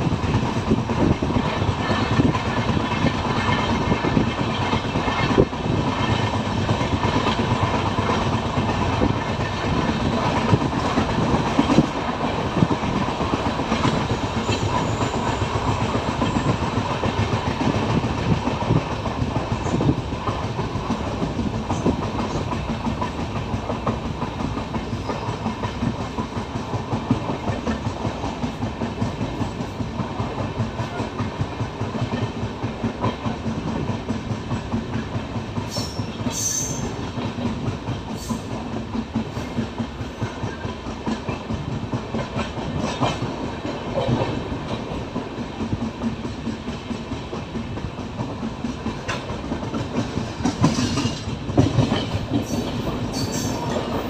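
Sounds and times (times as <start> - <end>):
train rumbling on rails: 0.0 - 54.0
wheels clattering over rail joints: 1.0 - 54.0.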